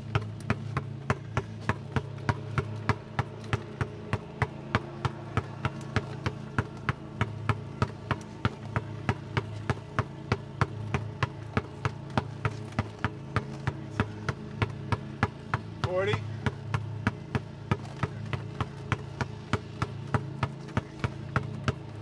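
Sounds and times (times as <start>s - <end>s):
basketball bouncing on asphalt: 0.0s - 22.0s
steady low hum: 0.0s - 22.0s.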